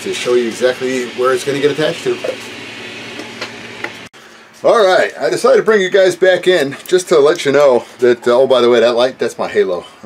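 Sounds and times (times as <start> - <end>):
low machine hum: 0.0 - 4.1.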